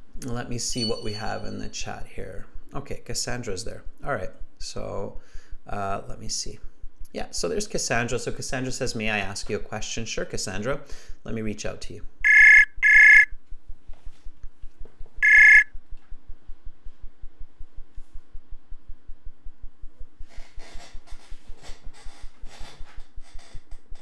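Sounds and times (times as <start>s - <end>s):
electronic call ringing: 12.2s - 13.3s, 15.2s - 15.7s.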